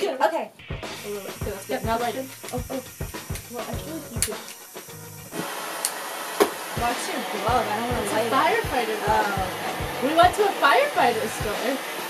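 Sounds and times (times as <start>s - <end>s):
propane torch hissing: 0.7s - 12.0s
torch sharp click: 2.4s - 4.7s.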